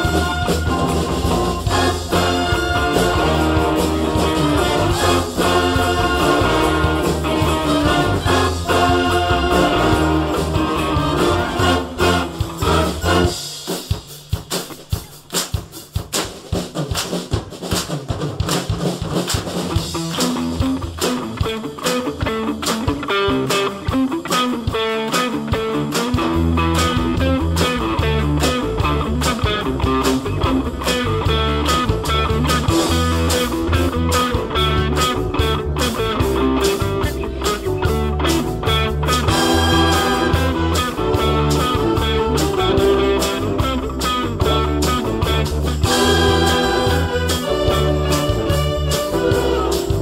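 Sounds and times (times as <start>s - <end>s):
low brass and bass: 0.0s - 13.4s, 26.4s - 50.0s
concert band playing rock medley: 0.0s - 50.0s
percussion beat: 0.0s - 50.0s.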